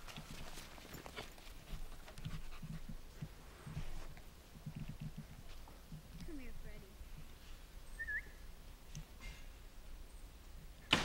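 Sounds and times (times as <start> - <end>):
dog panting: 0.4 - 3.3.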